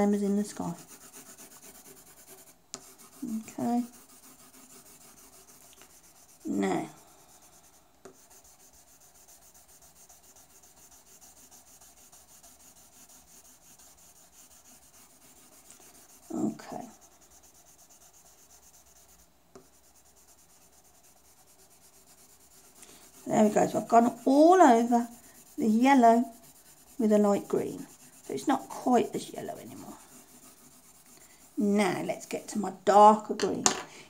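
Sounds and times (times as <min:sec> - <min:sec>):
pencil shading on paper: 0:00.5 - 0:32.5.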